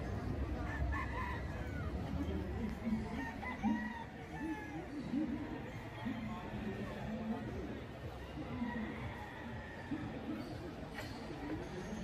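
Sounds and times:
roosters crowing: 3.0 - 5.0.

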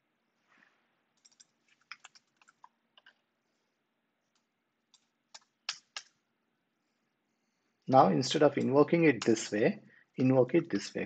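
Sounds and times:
computer keyboard keystrokes: 1.2 - 3.2.

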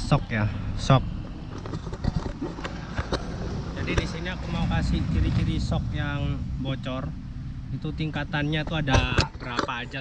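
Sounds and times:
man speaking: 3.7 - 10.0.

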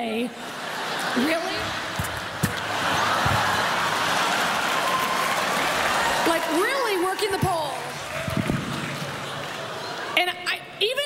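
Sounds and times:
audience laughing: 0.3 - 6.8, 8.4 - 10.2
audience applauding: 0.6 - 10.2.

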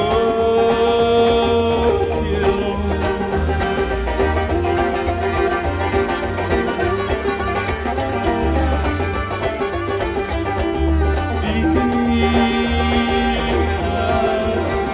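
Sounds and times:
banjo: 0.0 - 14.9
fiddle: 0.0 - 14.9.

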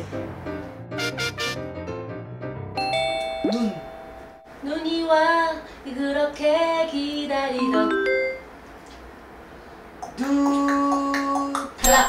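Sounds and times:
woman singing unaccompanied: 4.6 - 8.2, 10.1 - 12.0.

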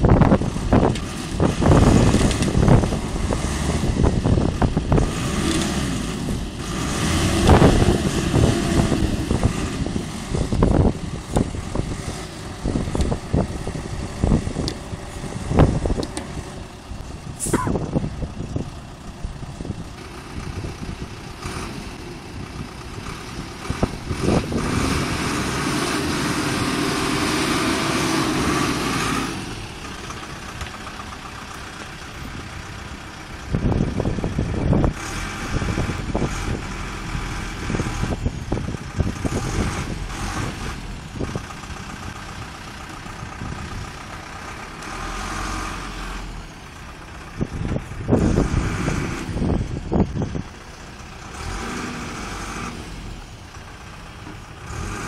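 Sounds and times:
wind buffeting microphone: 0.0 - 27.9, 32.2 - 44.2, 47.0 - 51.6
minibus engine revving: 0.0 - 55.0.

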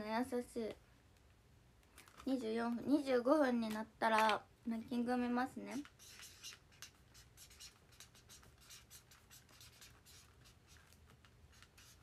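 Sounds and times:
quick scratching strokes: 5.8 - 12.0.

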